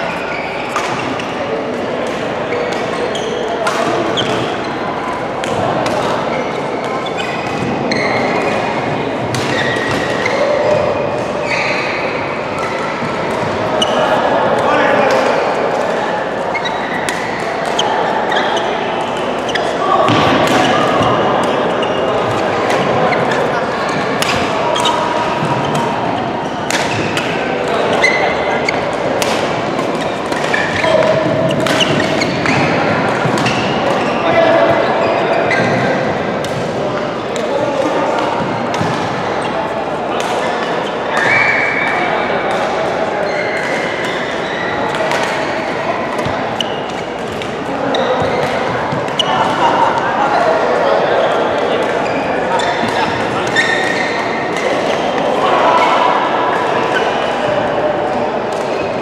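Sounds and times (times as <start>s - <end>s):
players' voices: 0.0s - 59.0s
rackets hitting shuttlecock: 0.6s - 55.9s, 58.2s - 59.0s.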